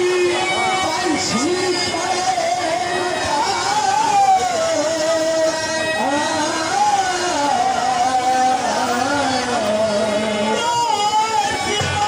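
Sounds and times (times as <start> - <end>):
man singing a hymn into a microphone: 0.0 - 12.0.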